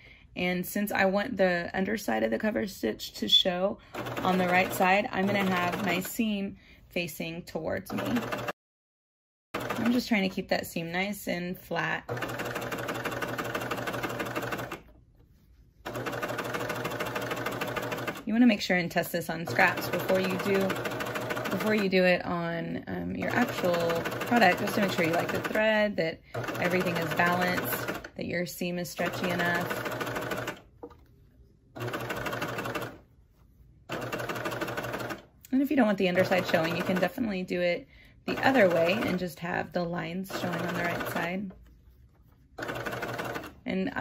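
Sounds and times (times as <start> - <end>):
sewing machine stitching: 3.9 - 6.1, 7.9 - 8.6, 9.6 - 10.4, 12.1 - 14.9, 15.8 - 18.3, 19.4 - 22.1, 23.2 - 28.2, 29.0 - 30.7, 31.8 - 33.0, 33.9 - 35.3, 36.0 - 37.2, 38.3 - 39.2, 40.3 - 41.6, 42.6 - 43.6.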